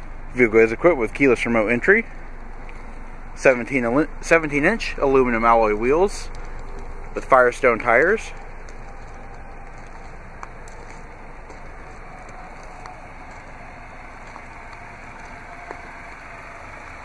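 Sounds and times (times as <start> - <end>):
low outdoor background noise: 0.0 - 17.0.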